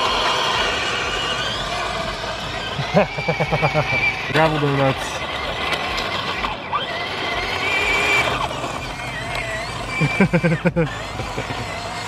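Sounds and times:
toy motor whine: 0:00.0 - 0:12.0
person laughing: 0:02.7 - 0:04.4, 0:09.8 - 0:12.0.

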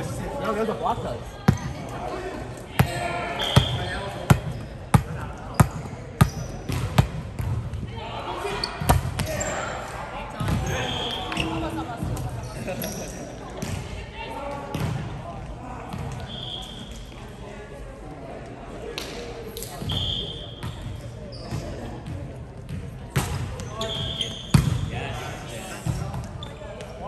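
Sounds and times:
players calling out: 0:00.0 - 0:06.6
sneakers squeaking: 0:02.8 - 0:07.6, 0:08.5 - 0:13.9, 0:15.9 - 0:17.3, 0:19.6 - 0:24.9, 0:25.8 - 0:27.0.

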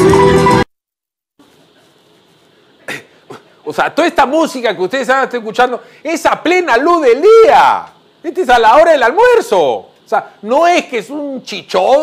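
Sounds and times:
short cough: 0:02.8 - 0:03.6.

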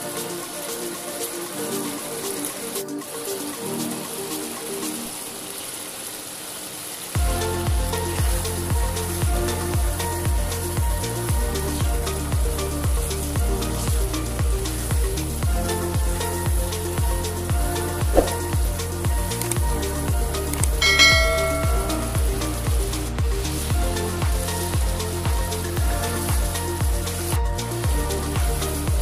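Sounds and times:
background music with steady beat: 0:00.0 - 0:05.9, 0:07.2 - 0:29.0
short chime: 0:20.8 - 0:22.6.

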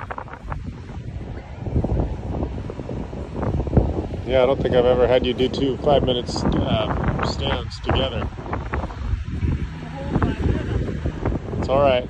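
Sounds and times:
low rumbling microphone noise: 0:00.0 - 0:12.0.

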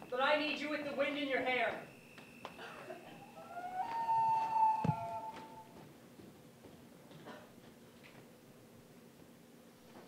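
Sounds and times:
faint high whine: 0:00.0 - 0:05.9
long wailing tone: 0:02.4 - 0:05.8.

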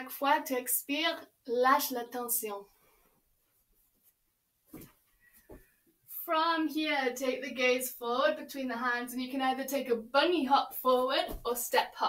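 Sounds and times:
body shifting on yoga mat: 0:03.8 - 0:05.8, 0:11.1 - 0:11.8.

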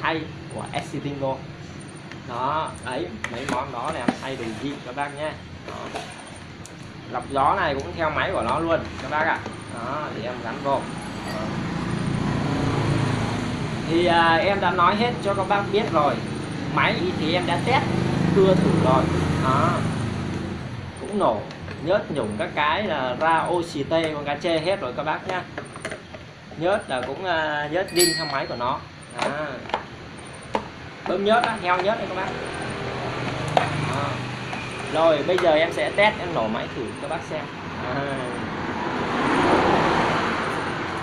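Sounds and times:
road vehicle passing: 0:03.8 - 0:21.4, 0:31.8 - 0:41.0.

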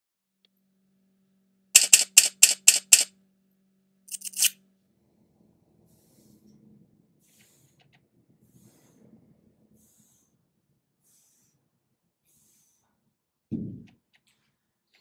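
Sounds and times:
camera shutter clicks: 0:01.8 - 0:03.1.

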